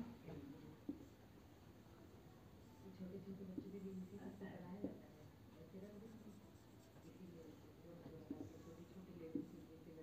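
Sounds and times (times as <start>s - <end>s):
marker pen on whiteboard: 0.8s - 1.2s, 3.3s - 10.0s.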